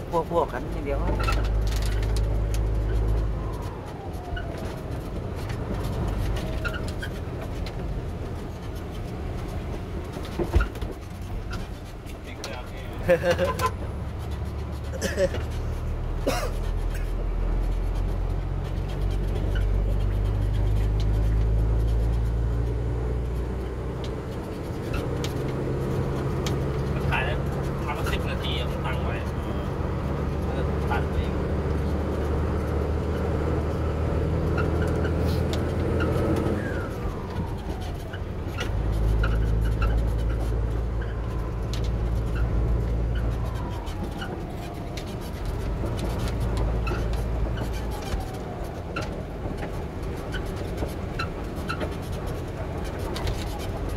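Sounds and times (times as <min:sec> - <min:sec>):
truck engine drone: 0:00.0 - 0:53.9
cab clicks and rattles: 0:00.7 - 0:53.9.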